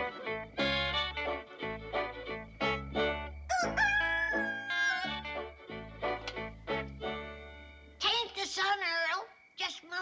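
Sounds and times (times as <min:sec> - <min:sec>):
rooster crowing: 0:03.5 - 0:05.3.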